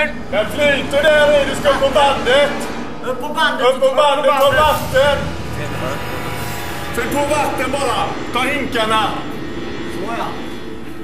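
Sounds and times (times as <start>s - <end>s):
mechanical rumbling: 4.3s - 11.0s.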